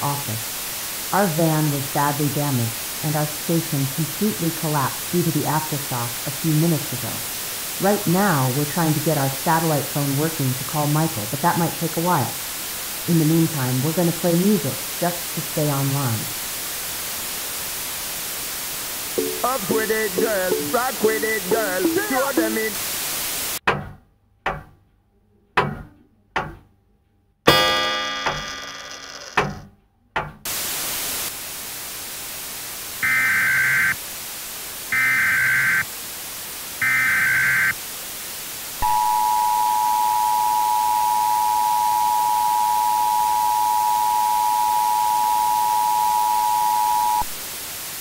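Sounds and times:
broadcast static hiss: 0.0 - 23.6, 30.5 - 48.0
two-tone attention signal: 19.2 - 22.7, 38.8 - 47.3
screeching data tones: 35.0 - 35.9, 38.8 - 47.3.

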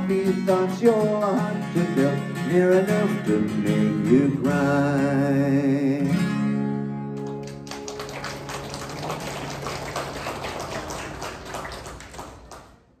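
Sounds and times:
audience clapping: 7.2 - 13.0.

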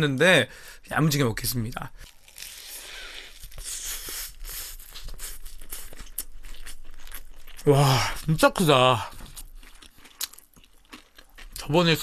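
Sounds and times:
person chewing crunchy sandwich: 2.0 - 11.8.

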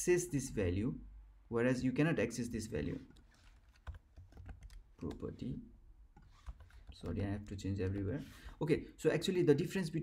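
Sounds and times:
computer keyboard typing: 3.1 - 5.4, 6.2 - 8.1.

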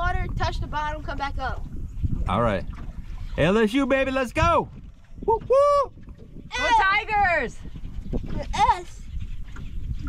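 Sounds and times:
wind rumble on microphone: 0.0 - 10.0
person cheering: 5.3 - 5.9.

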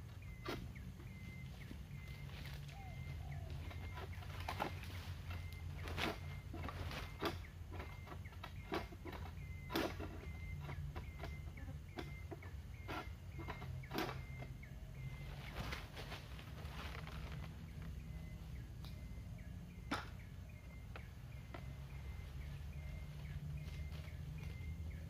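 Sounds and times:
bird chirping: 0.0 - 25.0
low steady hum: 0.0 - 25.0
sickle hacking palm fronds: 3.5 - 7.5, 15.3 - 17.7.

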